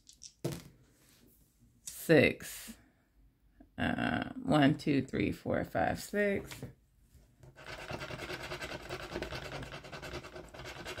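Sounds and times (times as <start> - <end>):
dice clattering on paper: 0.0 - 0.7.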